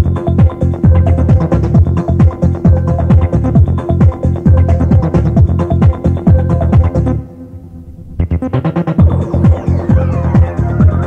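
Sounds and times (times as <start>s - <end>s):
kick drum: 0.0s - 7.2s
electronic dance music: 0.0s - 11.0s
falling synth sweep: 4.4s - 11.0s.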